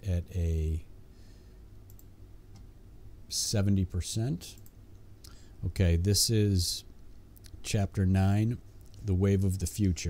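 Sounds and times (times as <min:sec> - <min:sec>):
low steady hum: 0:00.0 - 0:10.0
computer mouse clicks: 0:01.9 - 0:02.7.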